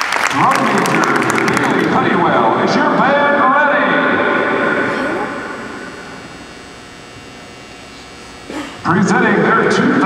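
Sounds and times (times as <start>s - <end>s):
arena room hum: 0.0s - 10.0s
announcer voice echoing: 0.3s - 6.1s.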